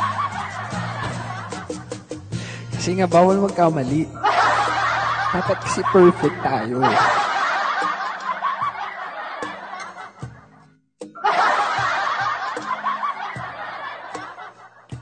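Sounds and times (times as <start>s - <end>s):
laughter: 0.0s - 2.1s, 4.2s - 15.0s.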